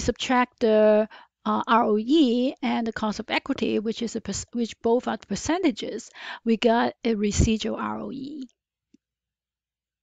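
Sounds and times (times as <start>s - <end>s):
woman speaking: 0.0s - 8.5s.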